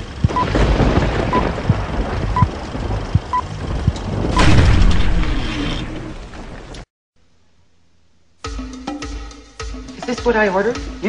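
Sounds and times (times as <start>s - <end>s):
low crackle pops: 0.1s - 6.9s.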